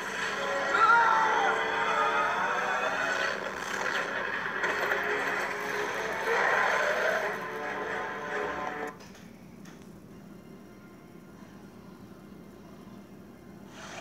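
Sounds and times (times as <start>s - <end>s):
film music through laptop speakers: 0.0s - 9.0s.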